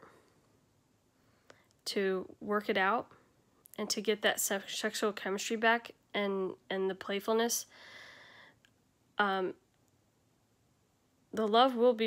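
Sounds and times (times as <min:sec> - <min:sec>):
woman talking: 0:01.9 - 0:03.1, 0:03.8 - 0:07.7, 0:09.2 - 0:09.6, 0:11.4 - 0:12.0.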